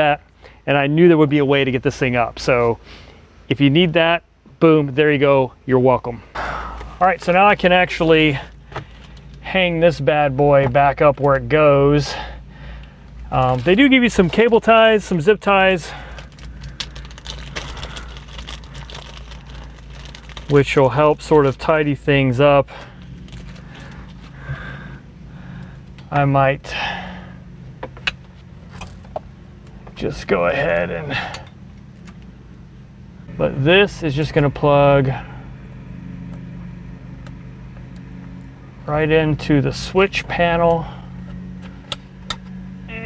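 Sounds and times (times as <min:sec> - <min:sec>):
steady low hum: 0:00.0 - 0:43.0
plastic packet crinkling and clicking: 0:16.1 - 0:20.8.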